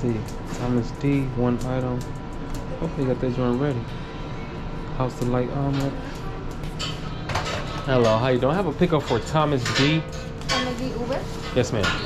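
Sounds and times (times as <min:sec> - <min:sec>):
quiet background music: 0:00.0 - 0:12.0
restaurant room sound: 0:00.0 - 0:12.0.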